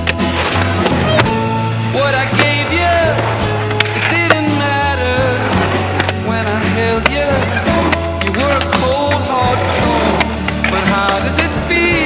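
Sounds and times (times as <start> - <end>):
skateboard wheels rolling on concrete: 0.0 - 12.0
song with singing and bass: 1.0 - 12.0
skateboard clacks: 2.1 - 12.0.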